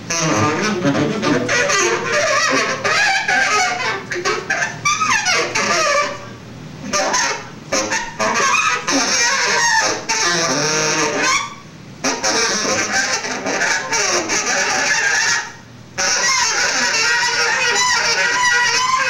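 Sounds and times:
saxophone honking and squealing: 0.0s - 6.3s, 6.9s - 19.0s.

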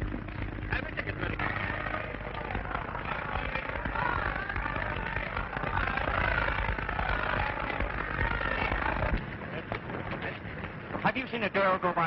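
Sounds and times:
low rumble: 0.0s - 11.9s
film soundtrack hiss: 0.0s - 12.0s
many voices talking: 0.0s - 12.0s.

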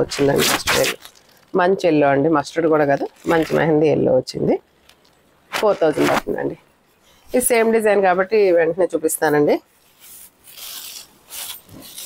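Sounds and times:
silk fabric rustling: 5.5s - 12.0s.

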